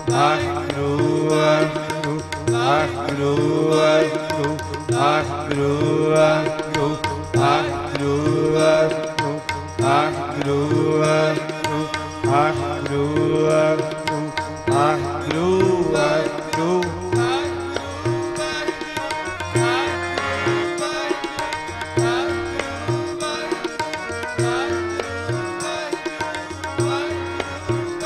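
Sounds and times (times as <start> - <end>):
harmonium chords: 0.0 - 28.0
tabla strokes: 0.0 - 28.0
voices singing a hymn: 0.0 - 28.0.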